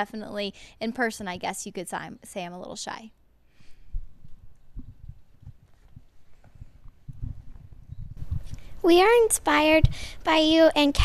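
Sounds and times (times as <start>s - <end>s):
microphone handling thuds: 3.9s - 8.6s
girl speaking: 8.8s - 11.0s.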